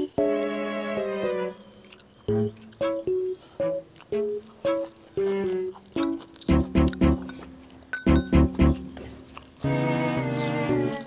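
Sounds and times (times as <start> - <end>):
plucked string notes: 6.5 - 7.4, 8.1 - 9.0
steady low note: 6.5 - 7.4, 8.1 - 9.0.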